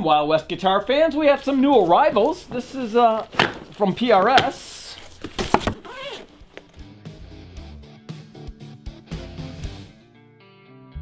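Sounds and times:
cardboard box knocks and scrapes: 3.2 - 6.2.

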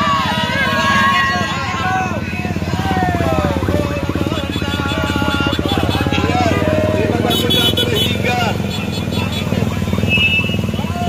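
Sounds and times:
women shouting and screaming: 0.0 - 3.6
motorcycle engines running: 0.0 - 11.0.

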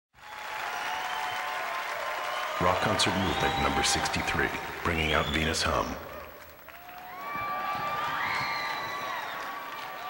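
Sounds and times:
audience applauding in a hall: 0.2 - 10.0.

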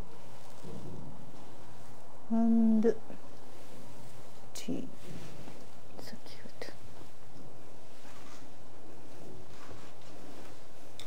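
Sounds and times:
soft whispered sounds: 0.0 - 11.0.

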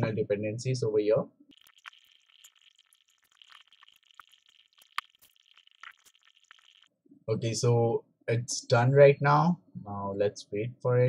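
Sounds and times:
small irregular clicks: 1.5 - 6.9.

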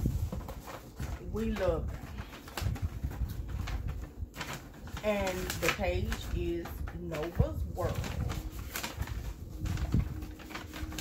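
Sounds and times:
paper bags rustling: 0.0 - 11.0.

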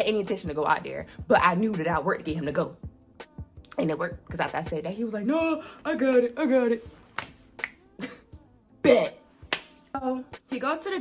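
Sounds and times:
fingers snapping: 7.1 - 7.8, 9.5 - 9.9.

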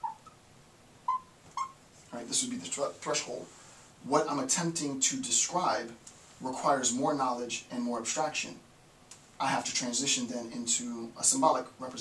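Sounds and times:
marker squeaking on whiteboard: 0.0 - 0.4, 1.1 - 1.8.

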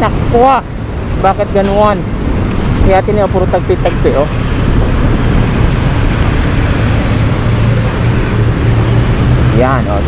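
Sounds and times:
wind and road noise from scooter: 0.0 - 10.0.

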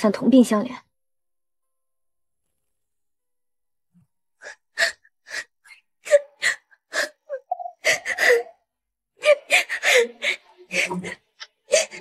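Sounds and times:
woman sobbing: 4.5 - 10.3.

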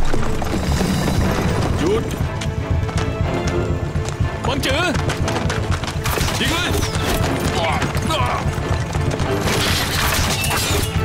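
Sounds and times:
horse hooves clopping on hard ground: 0.0 - 9.6
dramatic orchestral music: 0.0 - 11.0.

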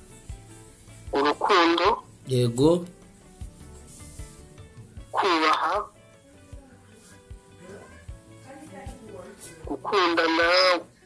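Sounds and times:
soft background music with low beats: 0.0 - 11.0.

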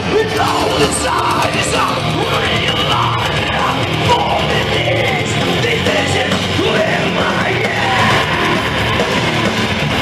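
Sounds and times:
distorted guitars: 0.0 - 10.0
drums: 0.0 - 10.0
yelled vocal: 0.0 - 10.0.

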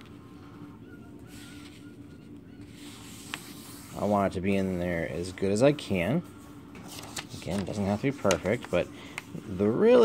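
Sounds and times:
steady low hum: 0.0 - 10.0
paper rustling being folded: 1.1 - 10.0.

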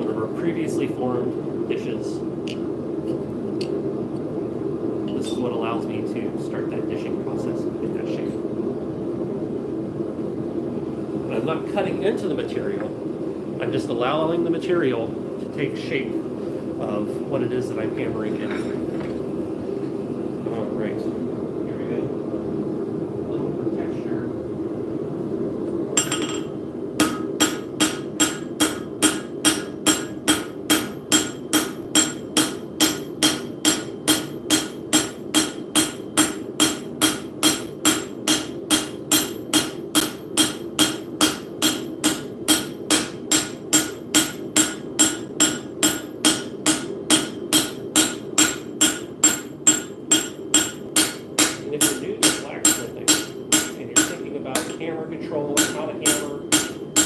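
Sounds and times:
hammer ringing on metal anvil: 26.0 - 54.8, 55.5 - 57.0.

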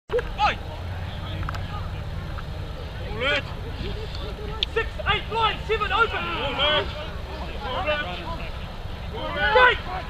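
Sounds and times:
players shouting: 0.1 - 10.0.

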